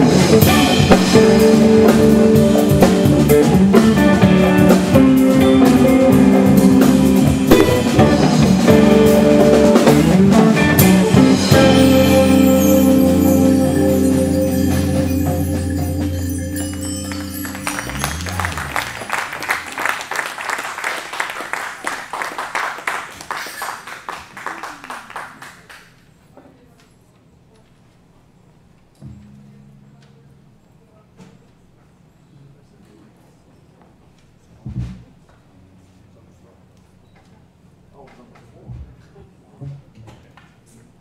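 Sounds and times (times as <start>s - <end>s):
jazz fusion band playing: 0.0s - 19.7s
busy drumming: 0.0s - 20.0s
cymbal ringing: 11.6s - 19.4s.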